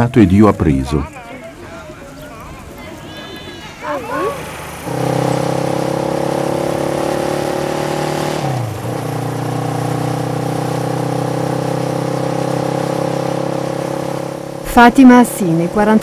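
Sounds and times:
motorcycle engine running: 3.8s - 16.0s.

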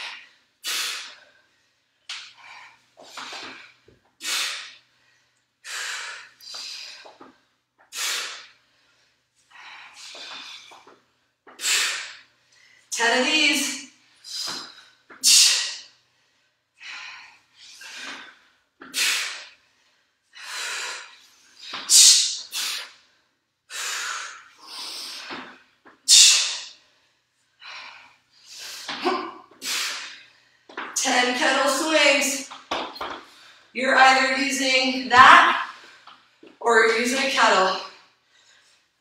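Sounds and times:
woman breathing hard: 0.0s - 10.9s, 14.0s - 21.8s, 23.7s - 30.8s.

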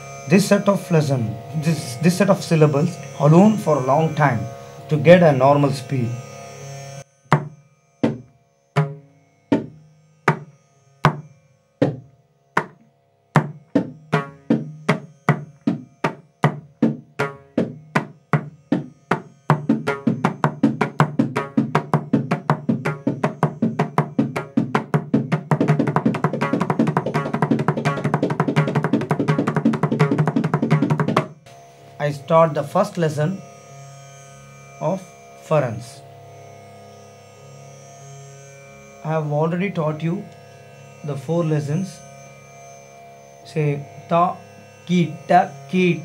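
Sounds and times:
hand drum strokes: 7.3s - 12.8s, 13.4s - 33.4s.

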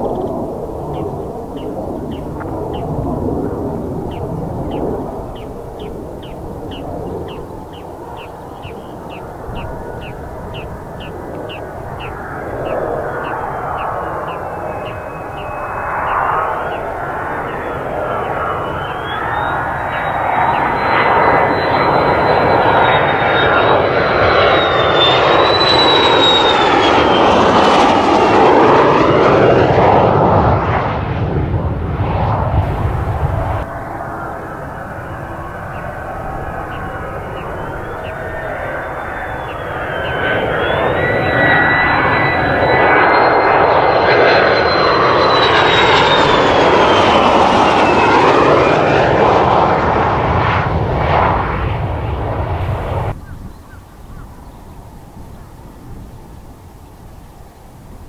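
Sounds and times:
jet roar with high whine: 0.0s - 58.0s.

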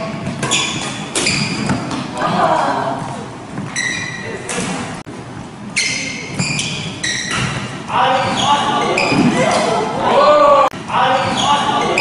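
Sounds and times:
shoes squeaking on wooden floor: 0.2s - 2.1s, 3.4s - 4.5s, 5.7s - 9.5s.

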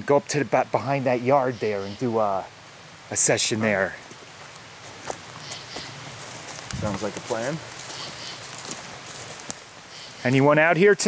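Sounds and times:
leaves and twigs rustling: 3.1s - 10.6s
footsteps through brush: 3.8s - 10.4s.

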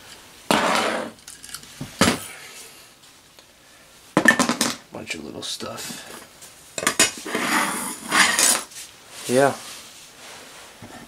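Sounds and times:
small metal parts rattling: 1.2s - 1.7s.

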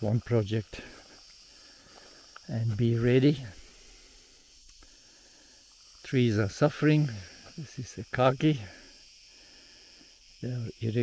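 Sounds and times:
insects droning: 0.0s - 11.0s.

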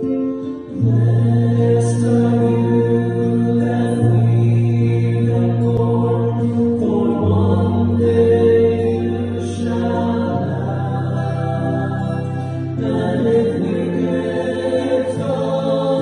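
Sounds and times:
church choir singing: 0.0s - 16.0s.

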